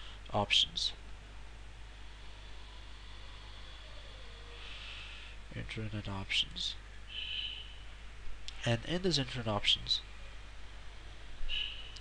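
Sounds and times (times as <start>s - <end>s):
background hiss: 0.0s - 12.0s
low electrical hum: 0.0s - 12.0s.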